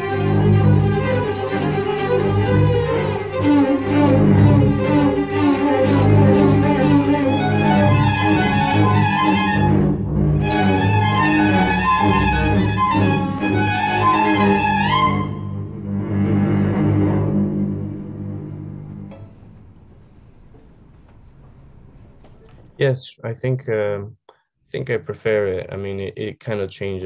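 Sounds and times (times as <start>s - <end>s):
string orchestra playing chords: 0.0s - 19.6s.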